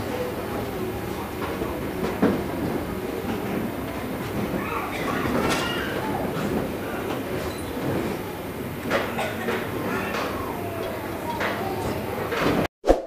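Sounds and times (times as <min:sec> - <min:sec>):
steady background noise: 0:00.0 - 0:12.7.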